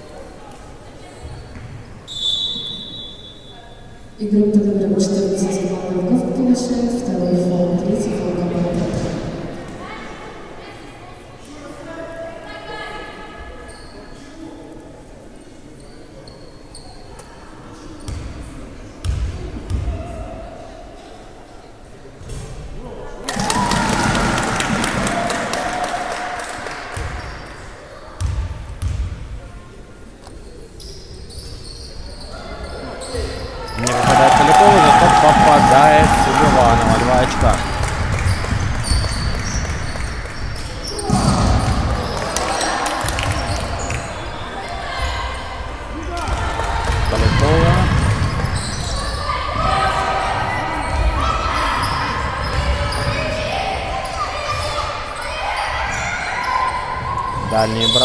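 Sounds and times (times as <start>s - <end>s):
spectators cheering: 23.3s - 26.9s, 33.8s - 39.4s, 46.2s - 48.0s
people shouting: 33.8s - 37.7s.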